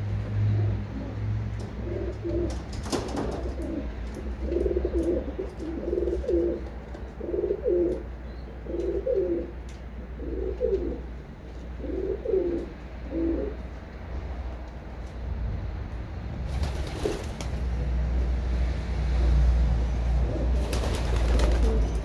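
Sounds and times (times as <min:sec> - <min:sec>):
pigeons cooing: 0:00.5 - 0:13.7, 0:20.1 - 0:22.0.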